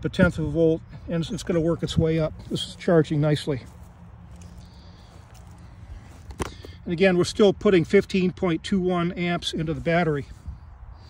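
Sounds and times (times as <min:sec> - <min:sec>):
man speaking: 0:00.0 - 0:03.8, 0:06.7 - 0:10.4
low outdoor rumble: 0:00.0 - 0:11.0.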